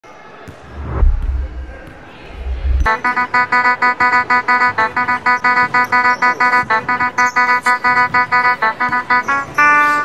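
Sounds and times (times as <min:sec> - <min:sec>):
faint voices: 0:00.1 - 0:10.0.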